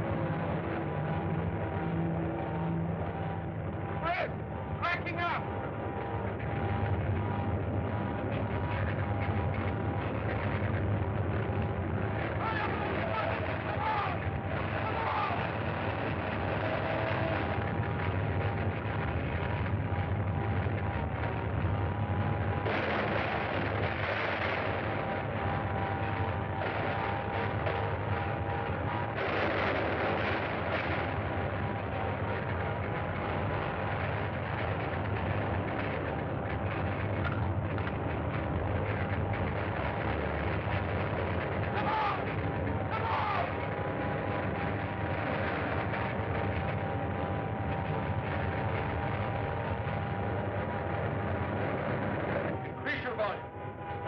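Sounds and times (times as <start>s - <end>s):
loud rattling rumble: 0.0s - 54.0s
thin steady whine: 0.0s - 54.0s.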